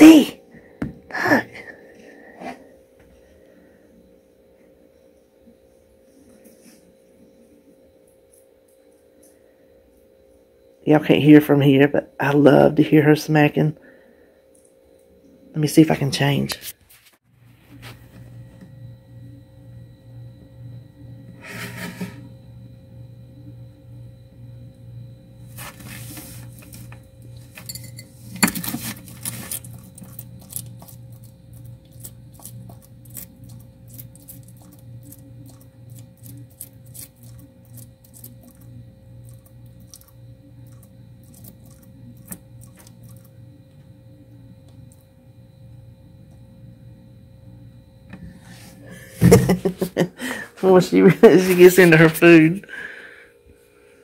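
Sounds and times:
steady low hum: 0.0 - 54.0
crunching clicks of chewing: 28.9 - 43.4.

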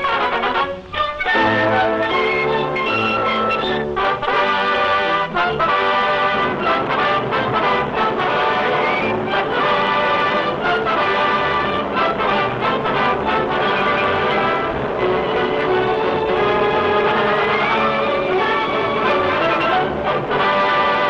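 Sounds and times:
orchestral cartoon music: 0.0 - 21.0.

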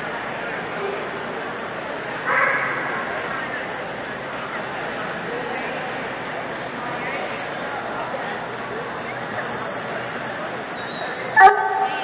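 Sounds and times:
murmur of voices: 0.0 - 12.0
dog barking: 2.3 - 2.9.

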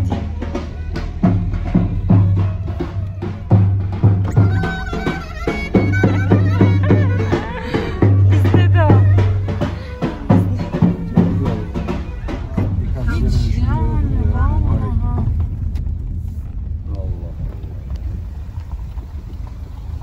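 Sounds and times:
folk music with drum beats: 0.0 - 19.6
low vehicle rumble: 0.0 - 20.0.

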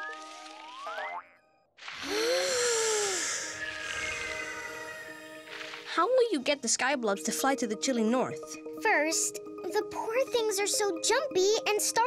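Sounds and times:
light music: 5.4 - 12.0.

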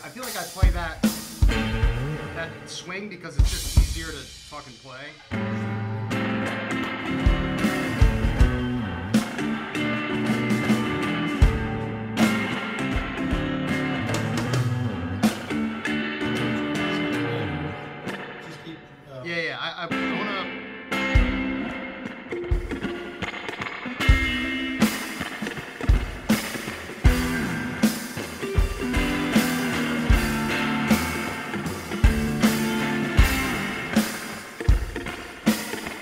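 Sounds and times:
guitar chords: 0.0 - 36.0.

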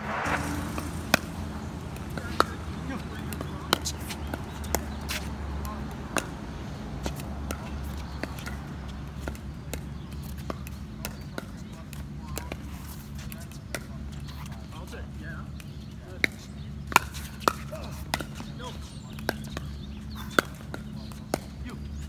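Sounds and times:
steady low hum: 0.0 - 12.2
pickleball hits off paddles: 1.9 - 14.6, 15.6 - 22.0.

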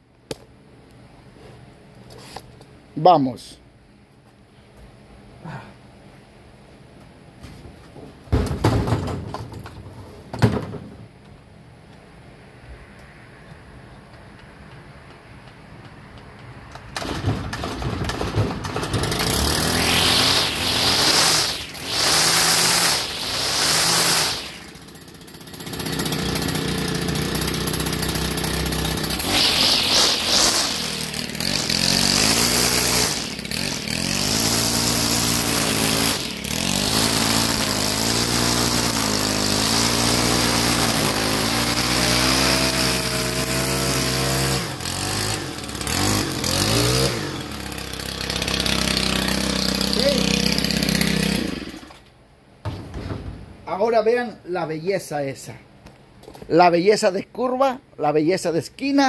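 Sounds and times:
string trimmer engine revving: 18.6 - 52.0.

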